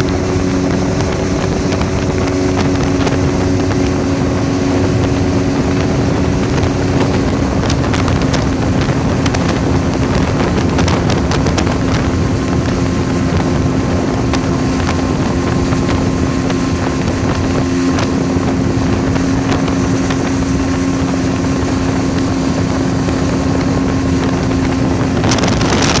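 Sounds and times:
motorboat engine humming: 0.0 - 26.0
wind buffeting microphone: 0.0 - 26.0.

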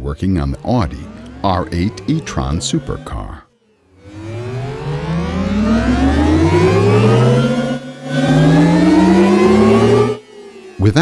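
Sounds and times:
electronic engine-like tone rising: 0.0 - 11.0.

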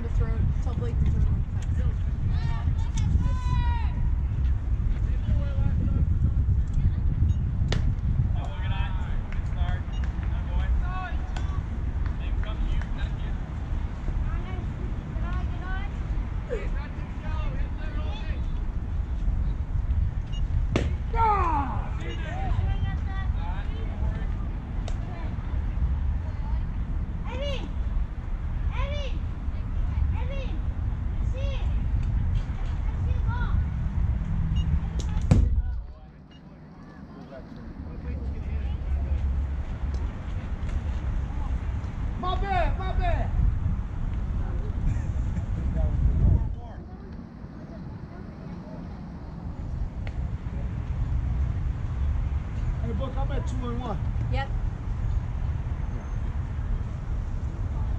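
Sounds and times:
wind rumbling on microphone: 0.0 - 36.0, 37.3 - 57.9
baseball sharp crack: 7.6 - 8.0, 20.6 - 21.1, 35.0 - 35.6
ball smacking into mitt: 20.7 - 21.0
distant voices calling out: 20.9 - 28.0.

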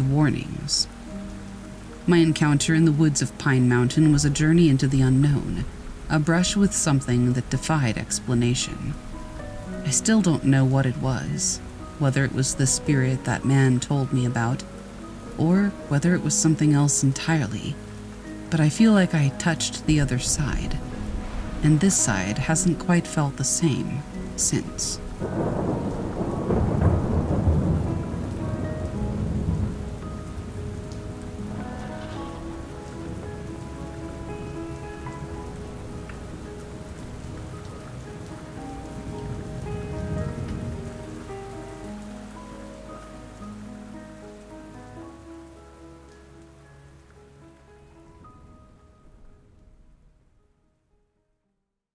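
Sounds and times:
steady rain: 0.0 - 50.4
soft sustained background music: 0.0 - 51.5
rolling thunder: 19.9 - 23.0, 25.0 - 41.9.

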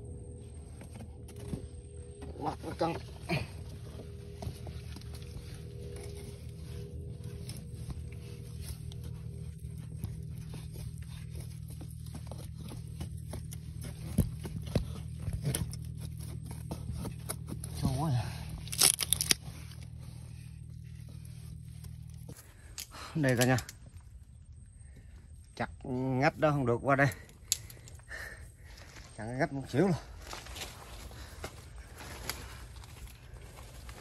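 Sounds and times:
steady low hum: 0.0 - 34.0
twigs crunching and snapping: 4.0 - 20.0.

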